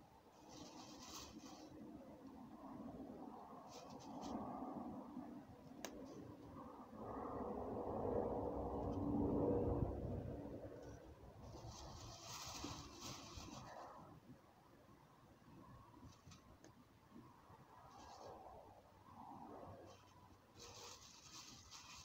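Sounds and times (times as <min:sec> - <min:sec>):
low rumble: 0:06.4 - 0:11.8.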